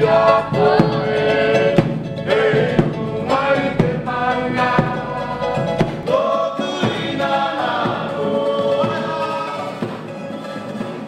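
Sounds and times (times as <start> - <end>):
choir singing held notes: 0.0 - 11.0
percussion hits: 0.0 - 11.0.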